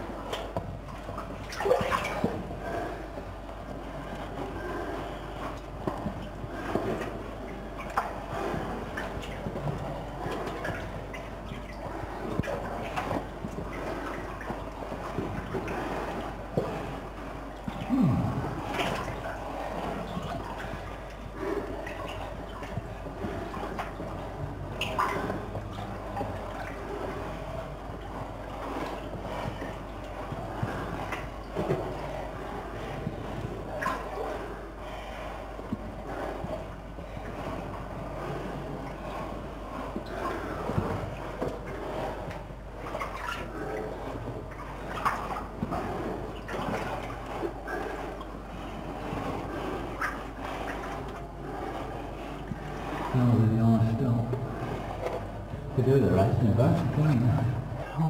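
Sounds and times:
water sloshing and splashing: 0:00.0 - 0:58.0.

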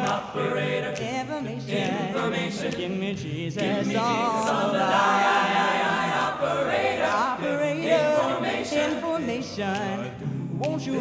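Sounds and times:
a cappella group singing gospel: 0:00.0 - 0:11.0.

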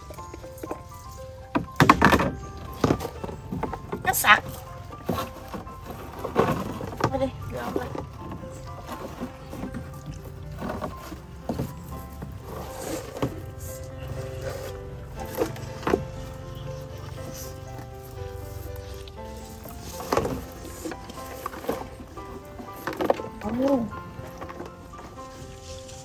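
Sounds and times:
fish trap knocking and rustling: 0:00.0 - 0:25.5
music with thin held notes: 0:00.0 - 0:26.0.

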